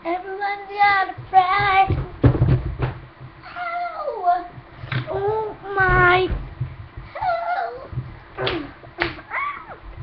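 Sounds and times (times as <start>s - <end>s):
girl singing: 0.0s - 2.3s, 3.4s - 6.4s, 7.1s - 8.8s.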